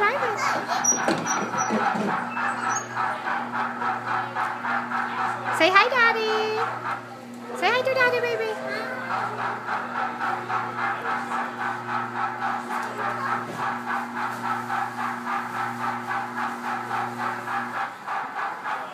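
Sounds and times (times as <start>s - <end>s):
kiddie ride electronic sound loop: 0.0s - 7.0s, 7.6s - 14.6s
held low hum: 0.0s - 18.2s.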